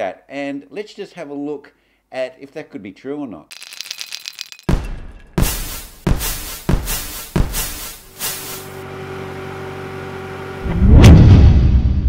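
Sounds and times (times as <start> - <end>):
sharp hit: 4.7 - 8.8
deep boom: 10.7 - 12.0.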